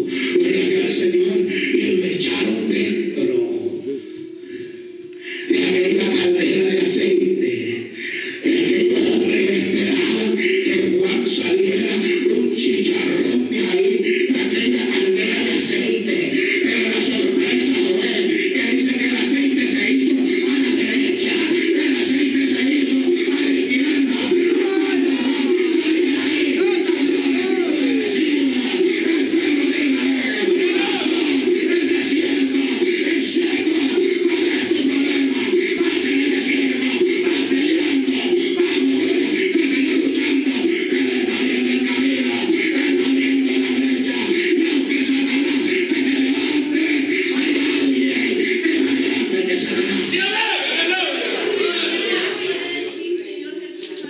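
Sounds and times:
music: 0.0 - 4.4, 5.1 - 50.4
man shouting into microphone: 50.0 - 52.0.

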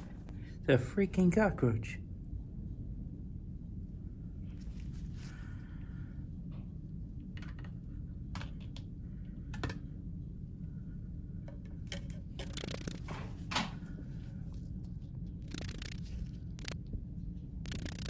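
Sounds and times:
steady low hum: 0.0 - 18.0
metal parts clicking and scraping: 11.9 - 13.1, 15.4 - 16.0.

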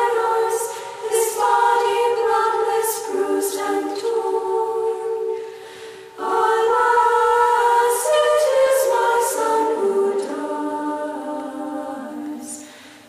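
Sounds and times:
women's choir singing a hymn: 0.0 - 13.0.

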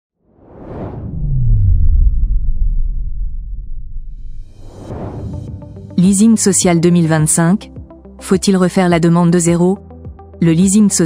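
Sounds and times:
whoosh: 0.2 - 6.0
deep bass tone sliding down: 0.4 - 6.0.

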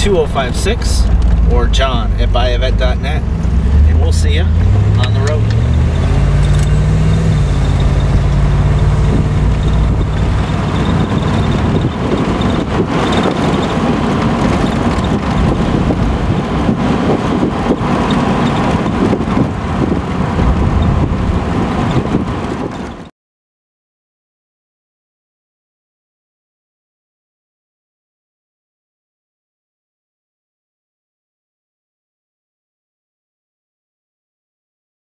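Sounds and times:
car engine under throttle: 0.0 - 23.1
road and wind noise: 0.0 - 23.1.

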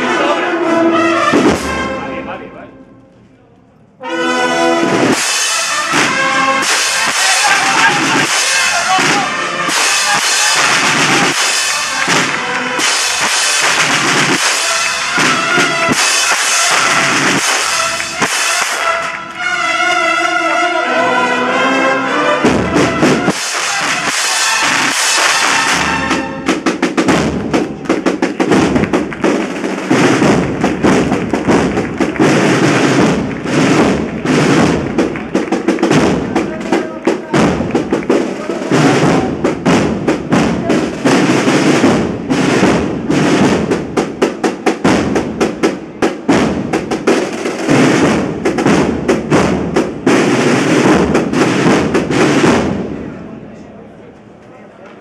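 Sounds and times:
brass band chord: 0.0 - 3.0, 4.0 - 26.8
snare and bass drums: 1.2 - 2.0, 4.8 - 19.2, 22.4 - 53.0.

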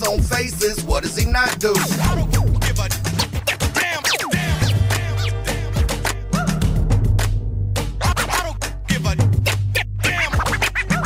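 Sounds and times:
turntable scratches: 0.0 - 5.4, 8.0 - 8.6, 9.4 - 11.0
hip-hop beat with heavy bass: 0.0 - 11.0.

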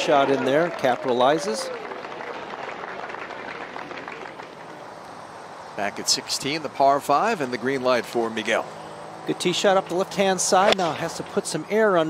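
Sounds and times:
spectators applauding: 0.0 - 4.8.

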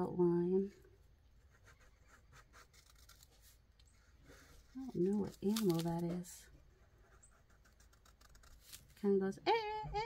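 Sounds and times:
marker scratching on paper: 1.4 - 3.1, 6.8 - 8.6.

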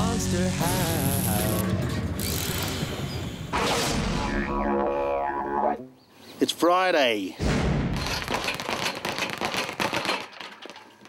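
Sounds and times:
rapid sharp crackling clicks: 8.0 - 11.0.

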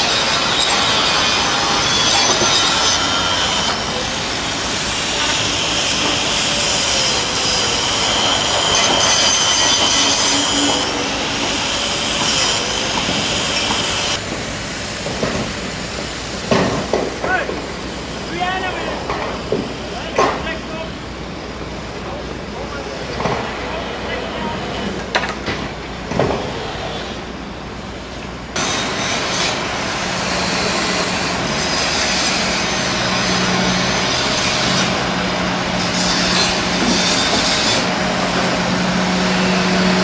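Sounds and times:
metal squealing and scraping: 0.0 - 14.2, 30.2 - 40.0
heavy machinery running: 0.0 - 40.0.

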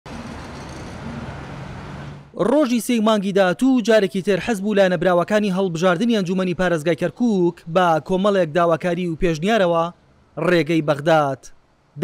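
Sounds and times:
road traffic: 0.0 - 3.5, 4.9 - 12.0.

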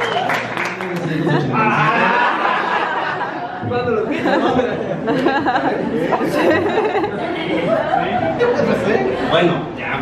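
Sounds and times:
several people talking at once: 1.0 - 10.0.

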